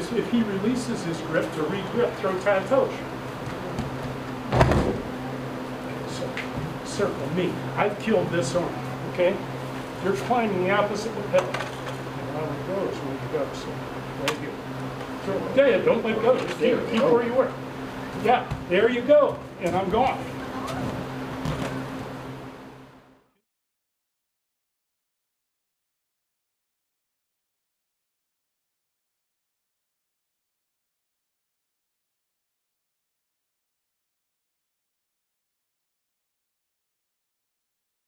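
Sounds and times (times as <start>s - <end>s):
steady low hum: 0.0s - 23.3s
brief thump: 4.5s - 5.1s.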